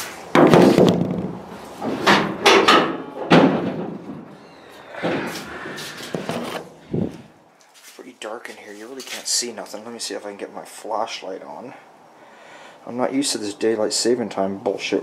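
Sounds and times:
thud: 0.4 - 4.4
scraping: 1.6 - 8.0.

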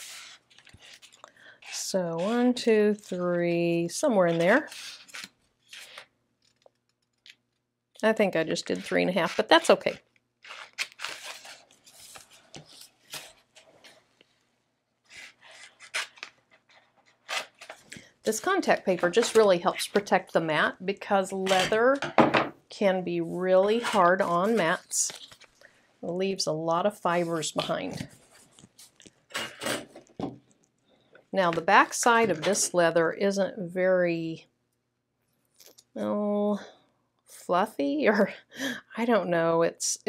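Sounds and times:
crinkly paper rustling: 0.0 - 2.4, 8.6 - 14.4, 15.1 - 20.2, 23.2 - 25.7, 27.2 - 29.6.

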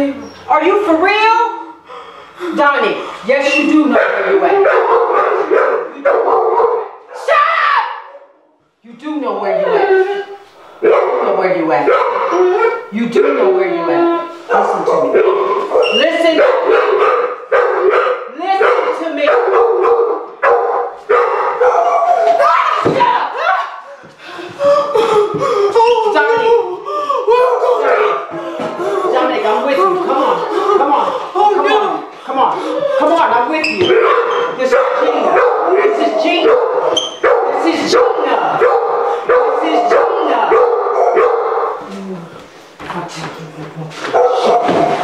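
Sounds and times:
dog barking: 3.8 - 7.3, 10.8 - 13.6, 14.5 - 22.4, 27.6 - 28.4, 33.8 - 41.8, 44.1 - 45.0.

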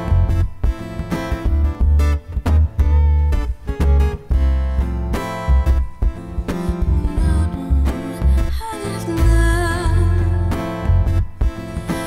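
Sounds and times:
pulsing bass: 0.0 - 12.0
strummed acoustic guitar: 0.0 - 12.0.

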